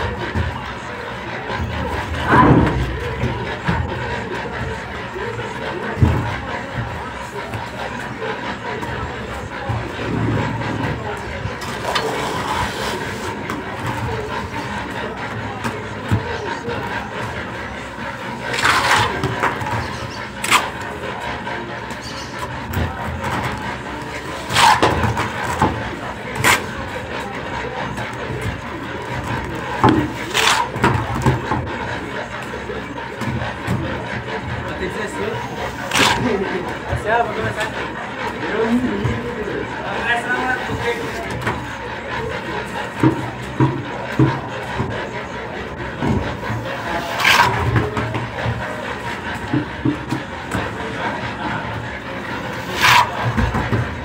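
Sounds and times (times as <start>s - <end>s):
background hubbub: 0.0s - 54.0s
indistinct voices: 0.0s - 54.0s.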